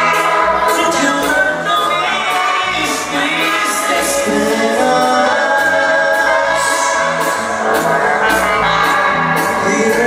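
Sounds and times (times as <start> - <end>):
bass: 0.0 - 10.0
live band music: 0.0 - 10.0
person singing: 0.0 - 10.0.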